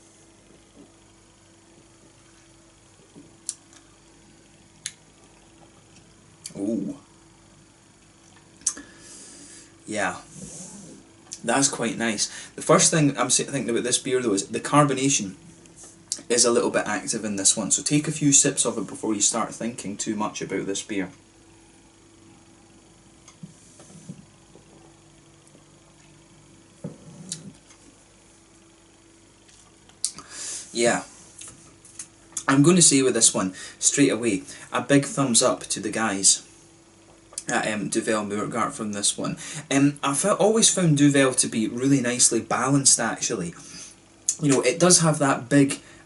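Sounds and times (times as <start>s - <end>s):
faint steady hum: 0.0s - 46.0s.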